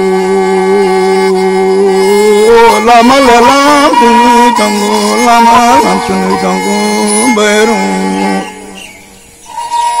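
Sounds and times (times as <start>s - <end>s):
man singing folk song: 0.0s - 9.0s
high sustained instrument note: 3.5s - 10.0s.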